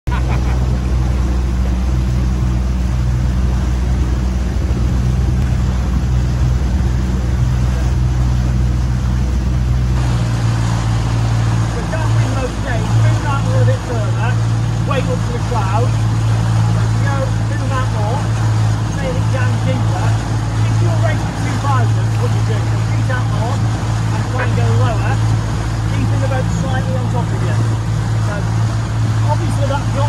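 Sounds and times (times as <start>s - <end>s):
water noise: 0.0s - 30.0s
wind: 0.0s - 30.0s
outboard motor running: 0.1s - 30.0s.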